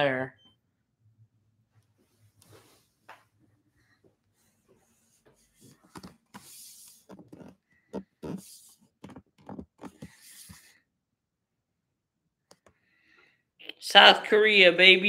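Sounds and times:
soft hissing: 5.1 - 7.2, 9.9 - 10.8
phone handling clicks and rustles: 5.8 - 6.4, 7.1 - 8.4.

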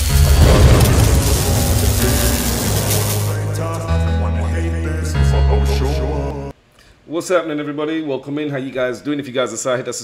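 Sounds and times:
rushing hissing sweep: 0.0 - 3.6
deep bass tone: 0.0 - 5.6.

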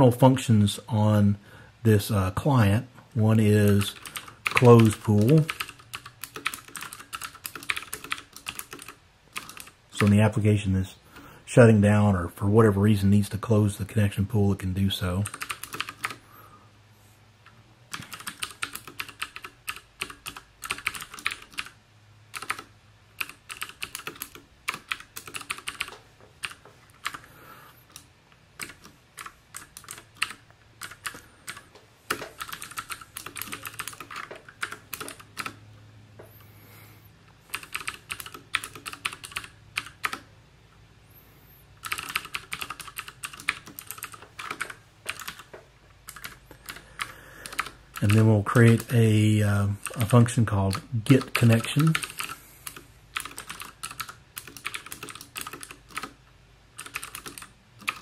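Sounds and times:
typing on computer keyboard: 3.5 - 10.2, 15.2 - 16.2, 17.9 - 27.3, 27.9 - 35.6, 37.5 - 40.3, 41.8 - 49.0, 49.8 - 56.2, 56.8 - 58.0.

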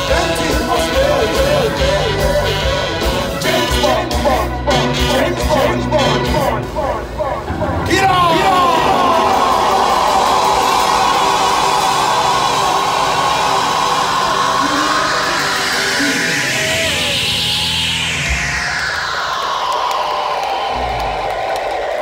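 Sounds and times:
live ska band playing: 0.0 - 10.8
noisy pitch swell: 3.0 - 20.0.

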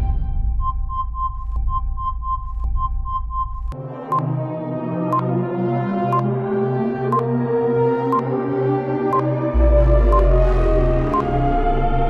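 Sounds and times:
ambient music: 0.0 - 12.0
electronic background music: 0.0 - 12.0
clock ticking: 9.1 - 11.4.

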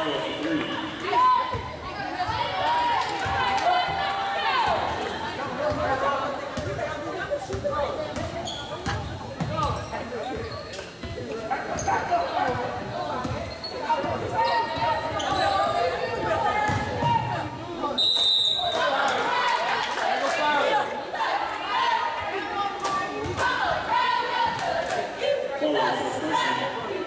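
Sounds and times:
referee's whistle: 17.9 - 18.8
cheerleaders chanting: 18.6 - 27.0.

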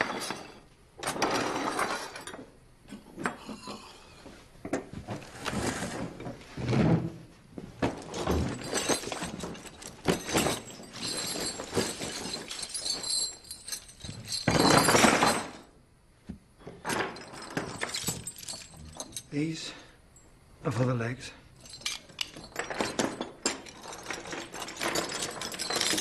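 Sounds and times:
chains clanking: 0.0 - 2.5, 8.0 - 15.7, 16.6 - 20.3, 21.5 - 26.0
clattering crash: 7.9 - 15.7.

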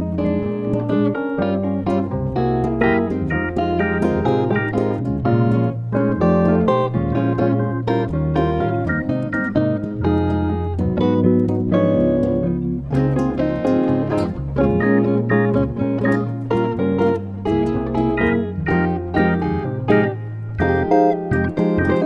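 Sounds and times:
bossa nova guitar trio: 0.0 - 22.0.

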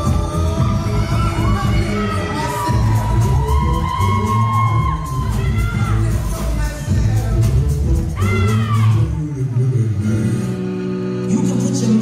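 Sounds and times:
audience cheering and shouting: 0.0 - 9.4
dance music with heavy bass: 0.0 - 12.0.

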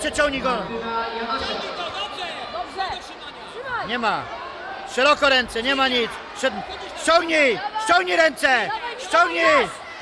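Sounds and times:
crowd chatter: 0.0 - 10.0.

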